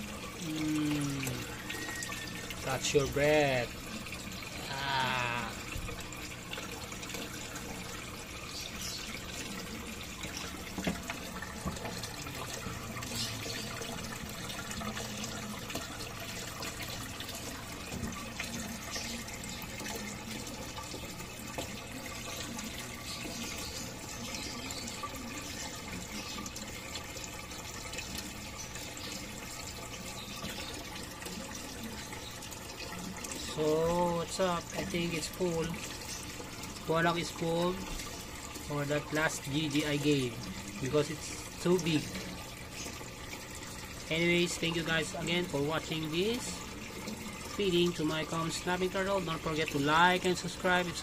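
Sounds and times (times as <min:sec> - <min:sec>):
trickling water: 0:00.0 - 0:51.0.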